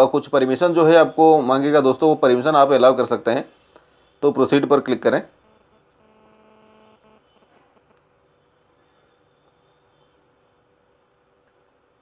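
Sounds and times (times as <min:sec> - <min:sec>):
faint hum with even tones: 0:00.0 - 0:12.0
man narrating: 0:04.2 - 0:05.4.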